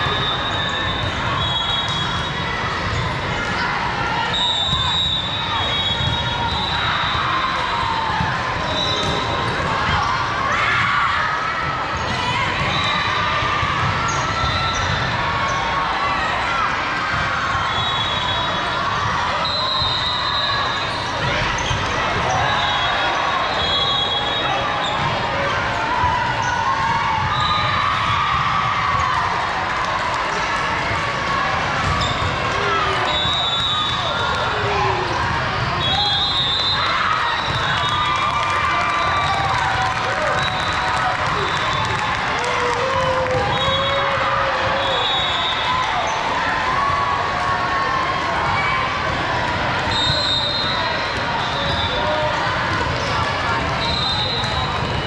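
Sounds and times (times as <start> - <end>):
murmur of spectators: 0.0 - 55.0.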